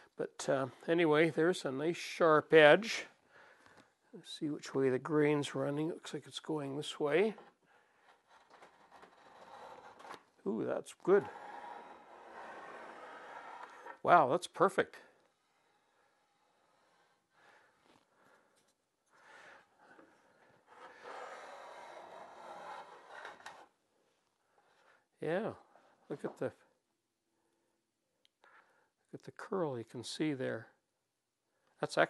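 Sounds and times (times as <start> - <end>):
plane blade shaving wood: 11.1 - 14.0, 20.8 - 23.6.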